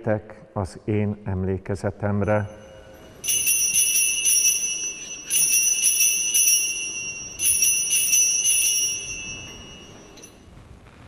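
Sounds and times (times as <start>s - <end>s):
altar bells ringing: 2.2s - 10.5s.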